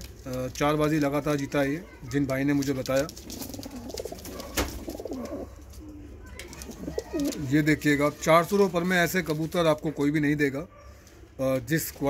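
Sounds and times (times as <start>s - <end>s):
pigeons cooing: 3.1s - 7.7s.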